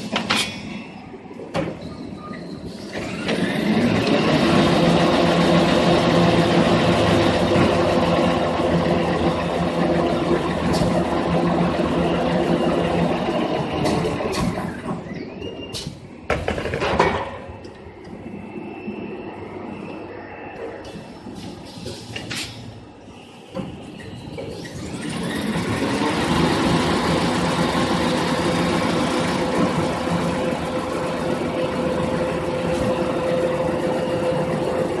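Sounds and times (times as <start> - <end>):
machine whining and humming: 1.0 - 16.3, 17.5 - 35.0.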